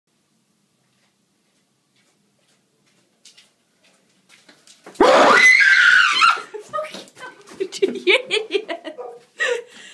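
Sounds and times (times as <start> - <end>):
woman screaming in fright: 5.0 - 6.6.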